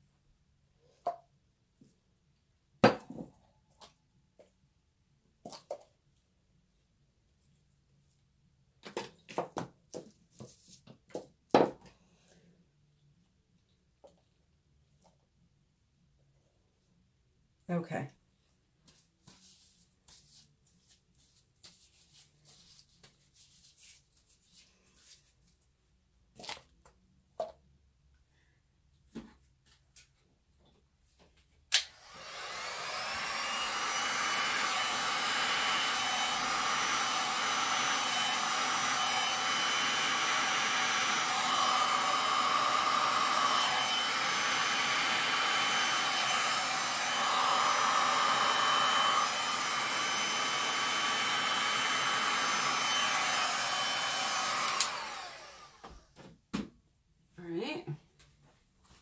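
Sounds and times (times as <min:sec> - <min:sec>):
heat gun fan whine: 0:31.7 - 0:55.9.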